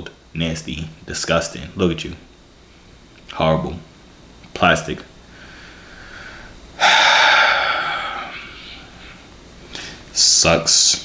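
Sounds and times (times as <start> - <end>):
man sighing: 6.1 - 10.0.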